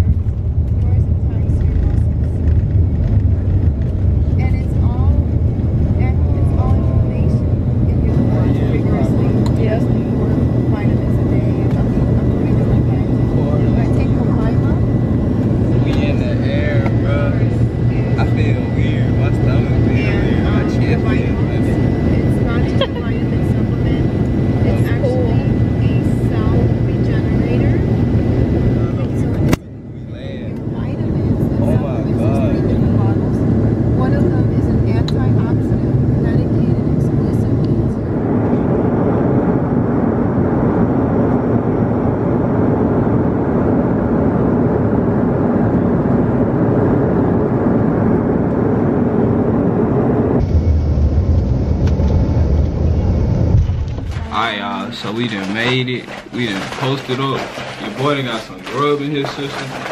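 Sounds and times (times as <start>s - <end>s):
airliner cabin engine noise: 0.0s - 59.9s.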